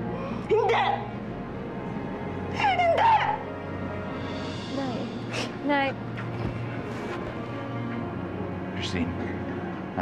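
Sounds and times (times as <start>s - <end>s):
low music bed: 0.0s - 10.0s.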